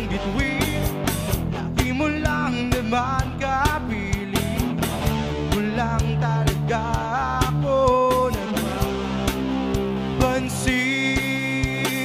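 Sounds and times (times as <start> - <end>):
drum kit: 0.0 - 12.0
rock band playing live: 0.0 - 12.0.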